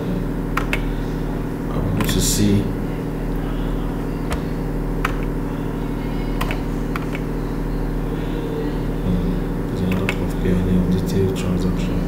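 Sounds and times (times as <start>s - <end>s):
steady low hum: 0.0s - 12.0s
computer mouse clicks: 0.6s - 0.9s, 6.4s - 7.3s.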